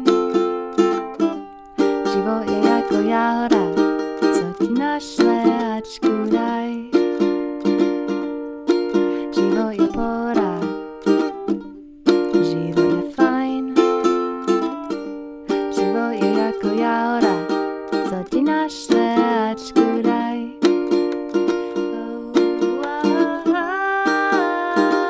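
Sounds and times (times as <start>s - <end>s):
ukulele strumming chords: 0.0s - 25.0s.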